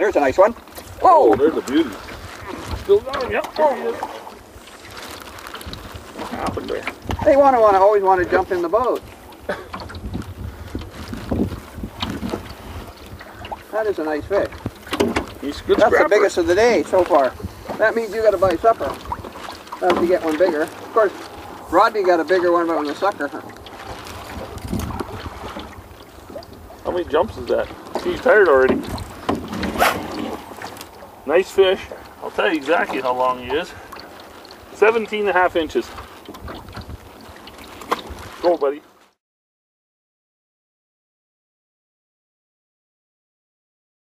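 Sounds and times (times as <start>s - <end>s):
wind buffeting microphone: 0.0s - 34.4s, 35.3s - 38.4s
water lapping: 0.0s - 39.2s
fish splashing into net: 0.8s - 6.6s.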